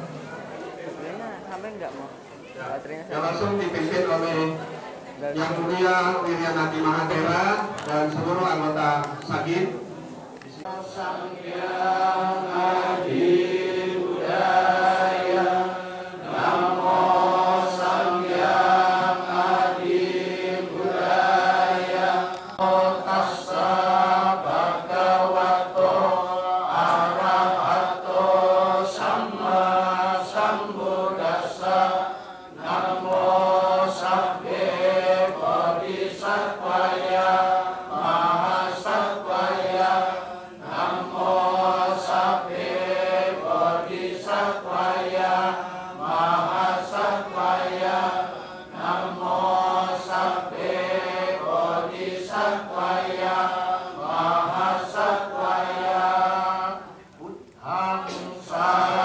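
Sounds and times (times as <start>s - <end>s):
monks chanting together: 10.5s - 59.0s.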